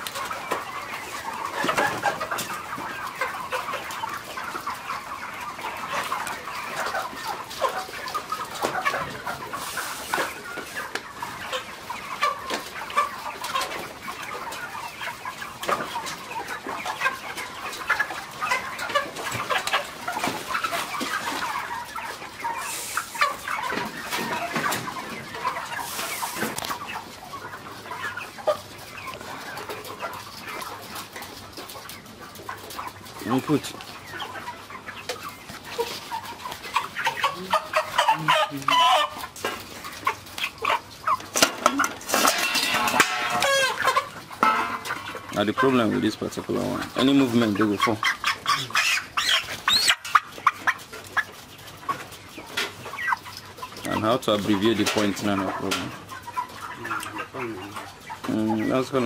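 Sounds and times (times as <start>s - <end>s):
chickens clucking: 0.0s - 59.0s.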